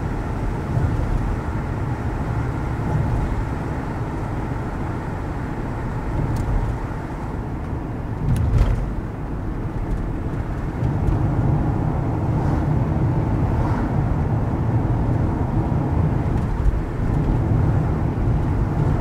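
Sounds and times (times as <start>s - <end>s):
car road noise: 0.0s - 19.0s.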